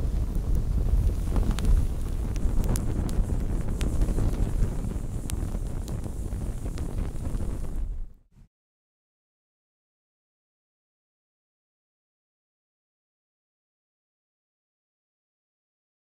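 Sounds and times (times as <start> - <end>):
fire crackles: 0.0 - 8.3
fire rushing: 0.0 - 8.3.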